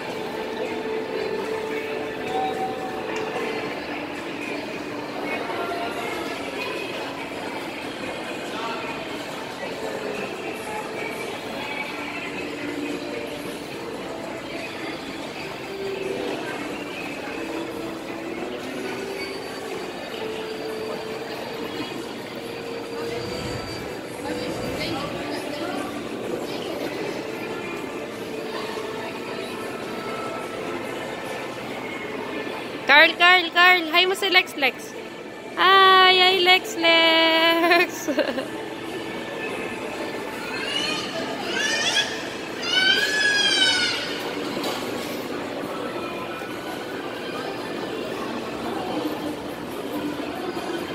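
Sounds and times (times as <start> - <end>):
carousel rumbling: 0.0 - 33.5
hubbub of busy indoor hall: 0.0 - 50.9
child squealing: 40.5 - 44.2.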